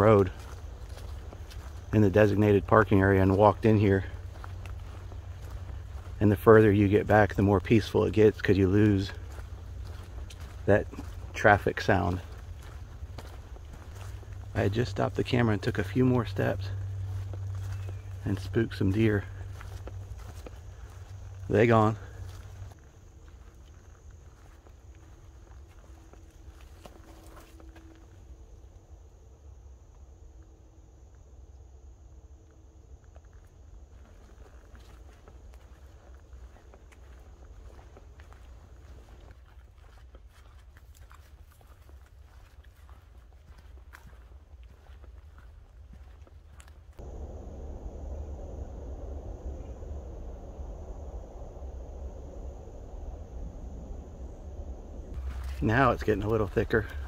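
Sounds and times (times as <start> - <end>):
low microphone rumble: 0.0 - 28.0, 47.0 - 57.0
faint crunches: 0.0 - 28.2
footsteps on sandy trail: 0.0 - 28.4, 33.1 - 57.0.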